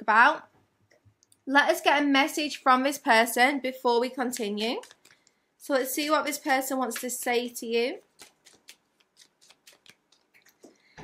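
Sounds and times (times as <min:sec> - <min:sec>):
cards being shuffled: 0:04.4 - 0:05.3, 0:08.1 - 0:10.8.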